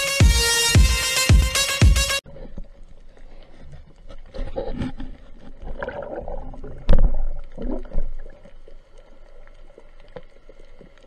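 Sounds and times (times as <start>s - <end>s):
electronic music: 0.0s - 2.2s
faint underwater clicks and crackles: 2.2s - 11.0s
low rumbling underwater noise: 2.2s - 11.0s.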